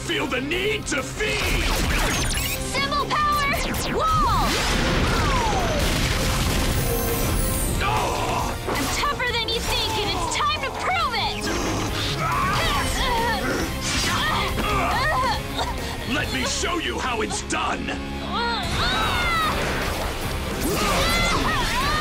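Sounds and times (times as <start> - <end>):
fight scene music: 0.0 - 22.0
grunts and shouts: 7.8 - 19.8, 20.6 - 22.0.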